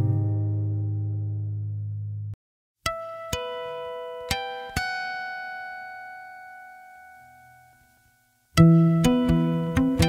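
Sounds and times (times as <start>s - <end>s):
plucked guitar notes: 0.0s - 7.8s, 8.6s - 10.0s.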